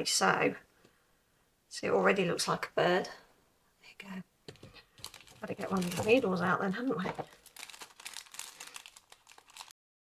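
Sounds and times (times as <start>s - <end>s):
paper envelope crinkling: 4.9s - 6.4s, 7.0s - 9.8s.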